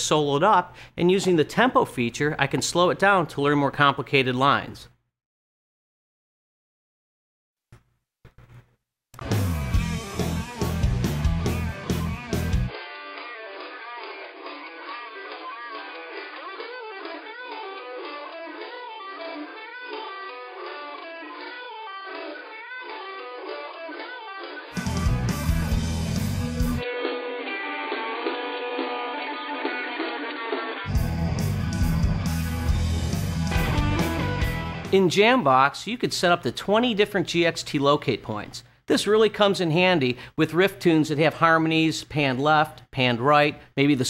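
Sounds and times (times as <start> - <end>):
thin soloed electric guitar: 9.2 - 35.0
rock band music: 9.2 - 35.2.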